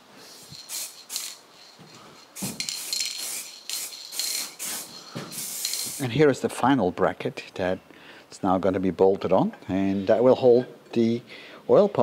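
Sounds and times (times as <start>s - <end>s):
spray-paint can hissing: 0.2s - 6.0s.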